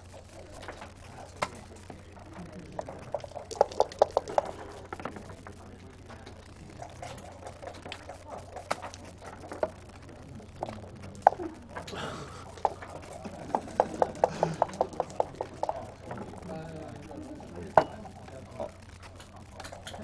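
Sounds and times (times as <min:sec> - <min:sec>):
checkers clicking on board: 0:00.2 - 0:20.0.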